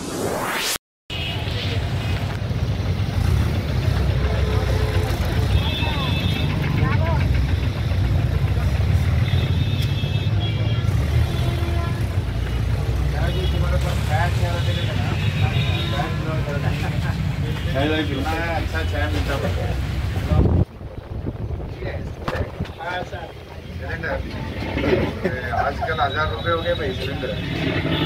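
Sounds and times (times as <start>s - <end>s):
traffic: 0.3s - 28.0s
people talking: 4.0s - 8.8s, 11.6s - 20.6s, 21.6s - 27.6s.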